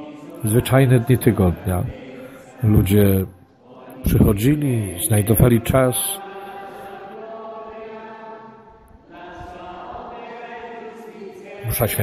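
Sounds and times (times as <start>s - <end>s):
held chant-like note: 0.0s - 12.0s
person narrating: 0.4s - 2.0s, 2.6s - 3.3s, 4.1s - 6.2s, 11.6s - 12.0s.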